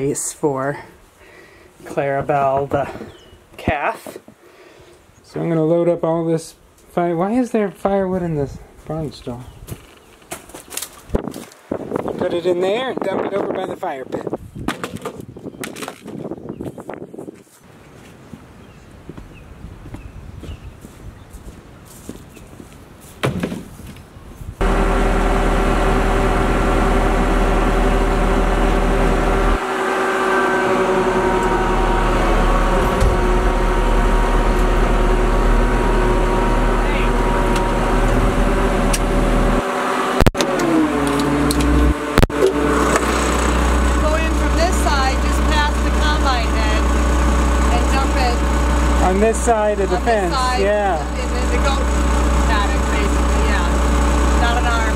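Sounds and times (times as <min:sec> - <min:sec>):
single thump: 0:23.2 - 0:23.7
tractor engine running: 0:24.6 - 0:54.9.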